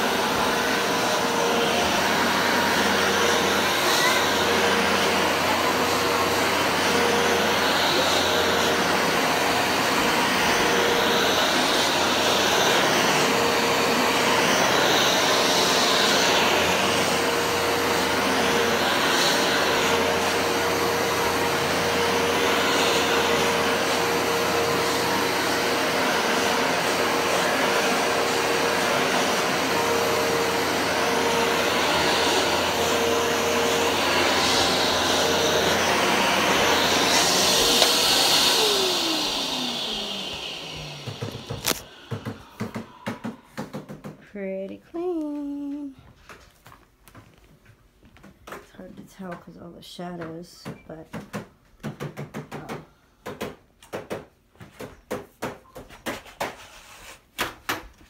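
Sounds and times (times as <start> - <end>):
carpet cleaner running: 0.0 - 46.4
motor winding down: 32.0 - 42.9.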